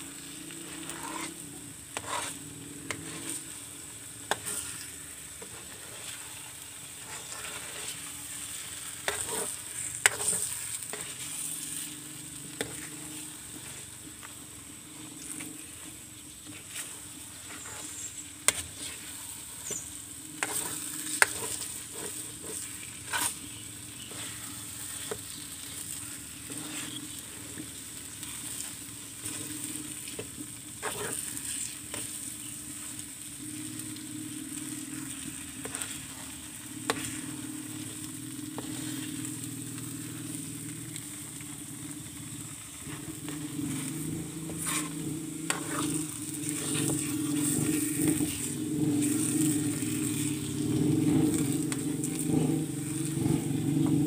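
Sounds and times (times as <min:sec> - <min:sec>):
mixture sizzling: 0:00.0 - 0:54.0
spatula scraping a metal wok: 0:00.2 - 0:41.5, 0:42.2 - 0:53.9.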